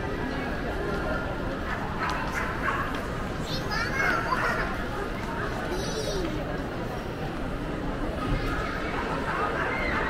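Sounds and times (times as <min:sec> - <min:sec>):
shopping mall crowd: 0:00.0 - 0:10.0.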